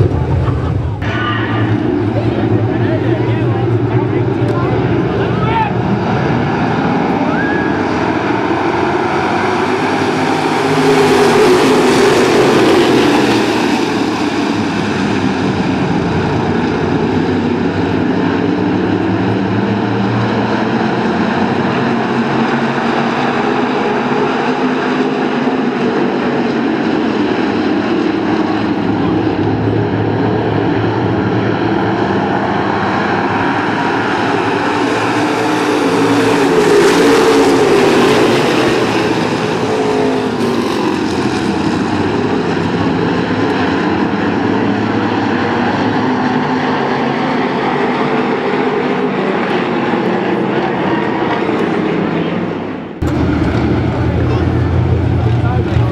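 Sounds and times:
stock car engines racing: 0:00.0 - 0:55.9.

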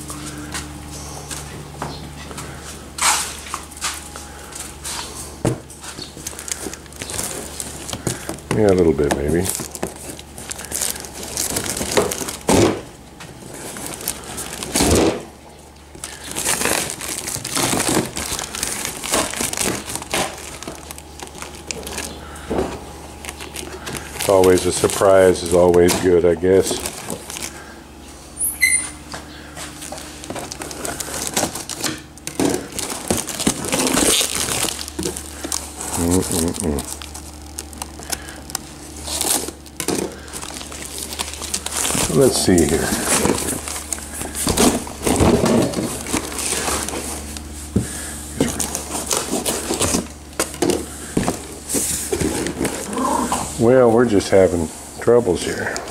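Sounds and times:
blade rasp and plastic crinkling: 0:05.8 - 0:12.6, 0:15.9 - 0:22.4, 0:23.2 - 0:27.6, 0:29.7 - 0:53.1.

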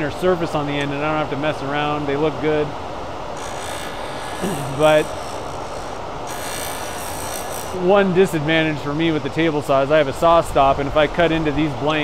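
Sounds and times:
high hiss: 0:02.6 - 0:08.0
lathe motor running: 0:03.2 - 0:07.9.

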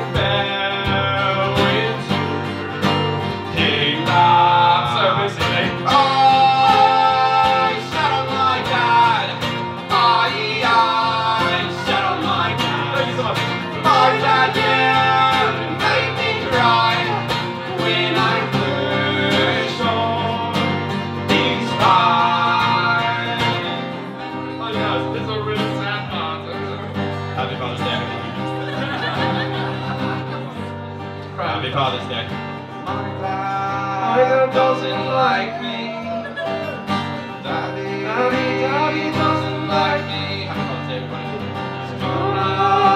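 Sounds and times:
person singing: 0:00.0 - 0:02.8, 0:03.4 - 0:24.2, 0:32.9 - 0:40.9, 0:41.9 - 0:42.9
keyboard: 0:00.0 - 0:42.9
strummed acoustic guitar: 0:00.0 - 0:42.9.

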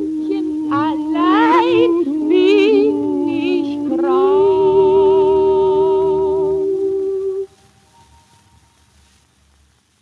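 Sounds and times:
operetta duet with orchestra: 0:00.0 - 0:08.1
record surface hiss: 0:00.0 - 0:10.0.

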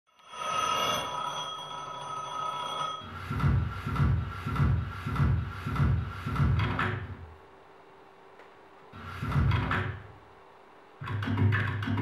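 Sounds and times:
high ringing electronic tone: 0:00.1 - 0:03.7
low electronic pulse: 0:03.0 - 0:07.4.

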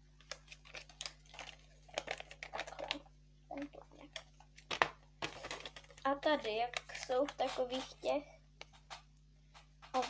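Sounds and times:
sharp paper crackle: 0:00.2 - 0:10.0.

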